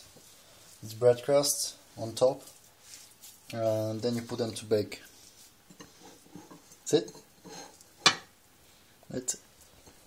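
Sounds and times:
kitchenware clacking: 5.8 - 8.3.

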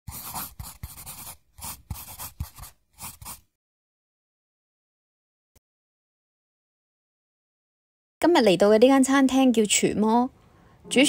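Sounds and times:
pen scratching on paper: 0.1 - 3.5.

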